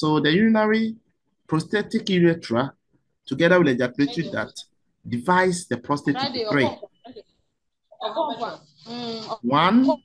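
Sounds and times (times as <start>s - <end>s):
man talking: 0.0s - 6.8s, 9.4s - 10.0s.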